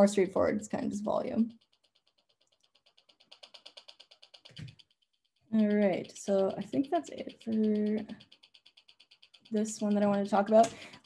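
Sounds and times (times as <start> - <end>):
rapid clicky electronic pulses: 0.0 - 11.0.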